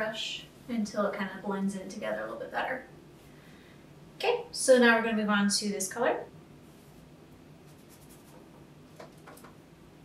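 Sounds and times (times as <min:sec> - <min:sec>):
paintbrush stroking canvas: 0:07.6 - 0:08.5.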